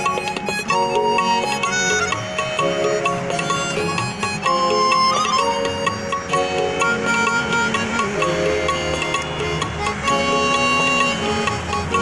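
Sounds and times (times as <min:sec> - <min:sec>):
harmonica melody: 0:00.0 - 0:12.0
instrumental accompaniment: 0:00.0 - 0:12.0
percussion beat: 0:00.0 - 0:12.0.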